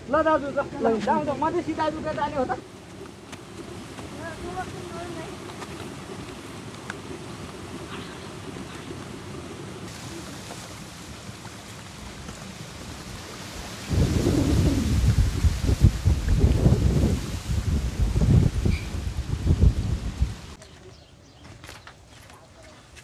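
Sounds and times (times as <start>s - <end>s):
wind buffeting microphone: 0.1s - 20.6s.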